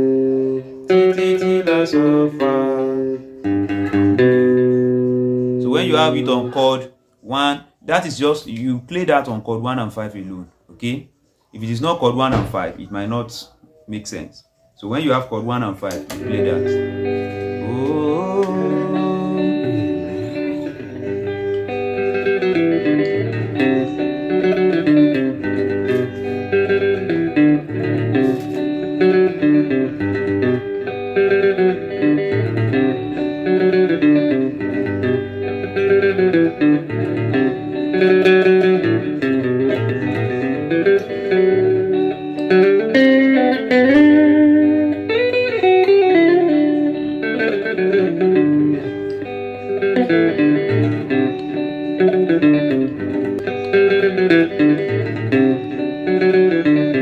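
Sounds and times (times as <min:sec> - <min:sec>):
guitar picking notes: 0:00.0 - 0:09.5, 0:13.7 - 0:57.0.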